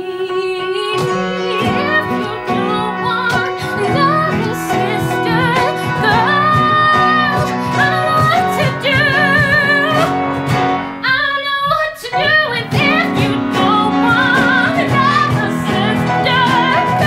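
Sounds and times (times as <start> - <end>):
woman singing with vibrato: 0.0 - 10.3, 11.0 - 17.0
instrumental accompaniment: 0.0 - 17.0.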